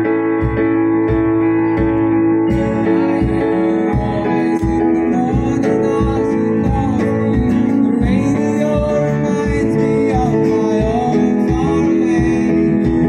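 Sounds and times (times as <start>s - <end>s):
steady drum beat: 0.0s - 13.0s
strummed acoustic guitar: 0.0s - 13.0s
person singing: 2.5s - 13.0s.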